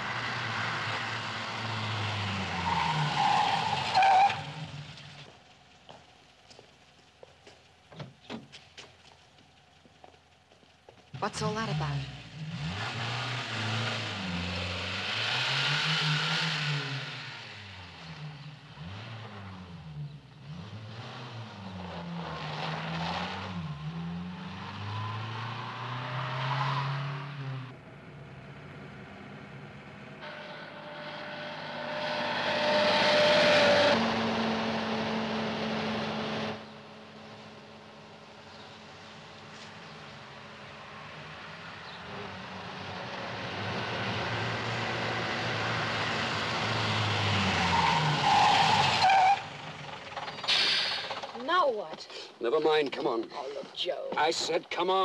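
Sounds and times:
car engine revving: 11.1s - 51.4s.

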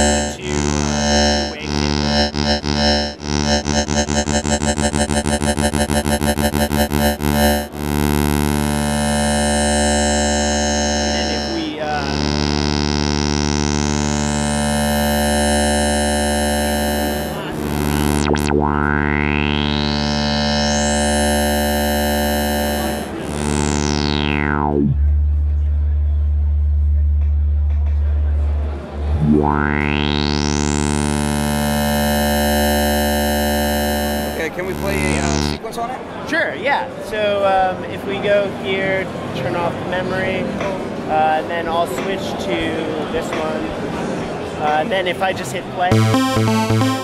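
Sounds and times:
buzzy synth note with filter sweep: 0.0s - 25.8s, 28.9s - 35.6s, 45.9s - 47.0s
heavy synth bass: 0.0s - 35.6s, 45.9s - 47.0s.

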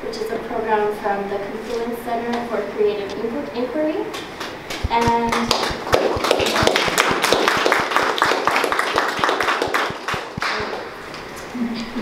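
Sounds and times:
audience applauding: 4.4s - 10.9s.

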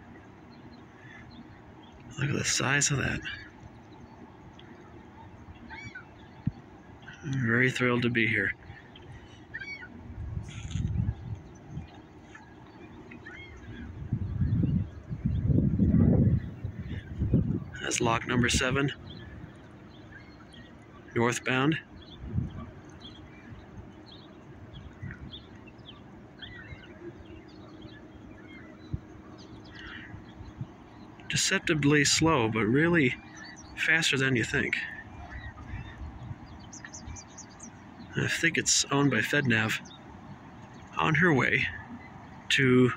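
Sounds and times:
bird calling: 0.0s - 42.9s
faint hum: 0.0s - 42.9s.

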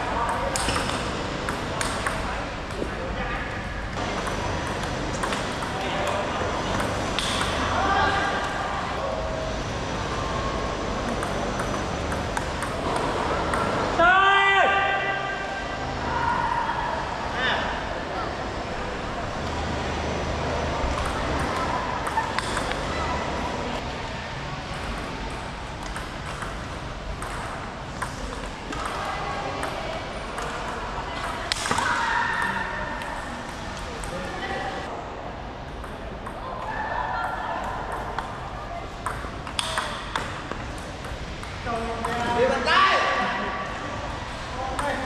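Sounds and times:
voices in a hall: 0.0s - 45.0s.

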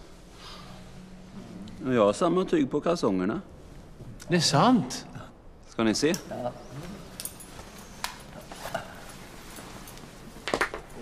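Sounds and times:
cloth rustling: 6.5s - 11.0s
metallic clicks and clinks: 7.1s - 8.8s.

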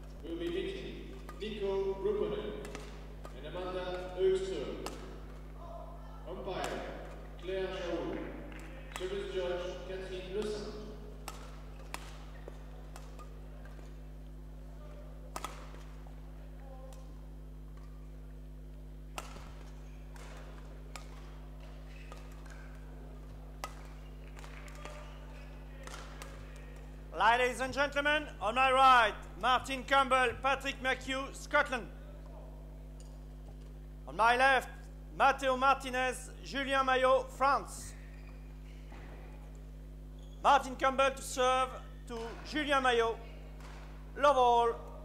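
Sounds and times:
indistinct voices in hall: 0.0s - 33.0s, 37.8s - 45.0s
steady low hum: 0.0s - 45.0s.

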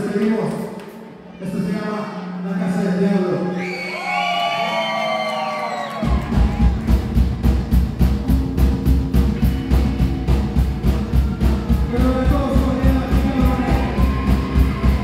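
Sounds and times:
crowd whooping and cheering: 3.4s - 7.4s, 11.0s - 15.0s
live rock band playing: 6.0s - 15.0s.

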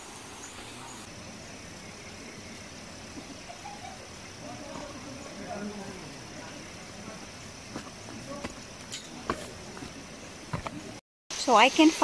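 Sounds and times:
high insect drone: 0.0s - 12.0s
footsteps on rocky trail: 7.5s - 11.0s.

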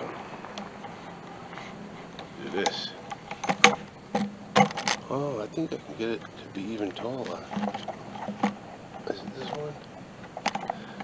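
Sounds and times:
rustling: 0.0s - 11.0s.

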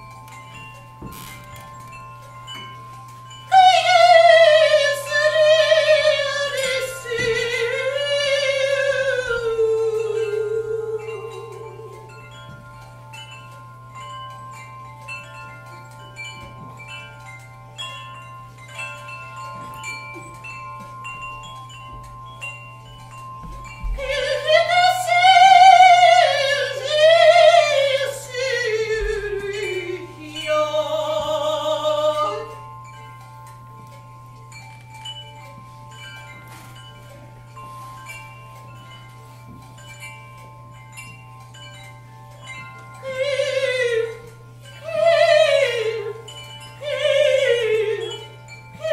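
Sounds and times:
bell-like metal percussion ringing: 0.0s - 48.9s
small metal chimes tinkling: 0.0s - 48.9s
steady low hum: 0.0s - 48.9s.

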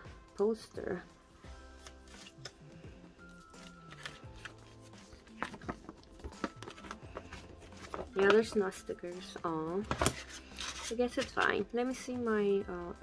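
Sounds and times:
soft background music: 0.0s - 13.0s
paper album being handled: 1.7s - 11.6s.

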